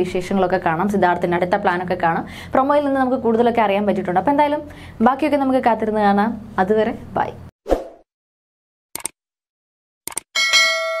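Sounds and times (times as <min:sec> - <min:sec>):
notification bell ding: 0:10.4 - 0:11.0.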